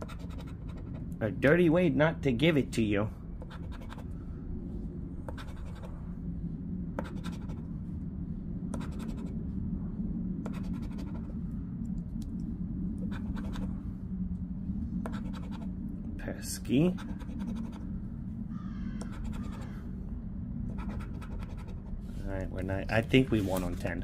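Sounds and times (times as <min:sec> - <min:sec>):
chip scraping scratch card: 0:00.0 - 0:01.1, 0:03.4 - 0:04.1, 0:05.3 - 0:05.9, 0:07.0 - 0:07.6, 0:08.8 - 0:09.3, 0:10.5 - 0:11.3, 0:13.0 - 0:13.7, 0:15.1 - 0:15.7, 0:16.9 - 0:17.8, 0:19.0 - 0:19.7, 0:20.7 - 0:21.9.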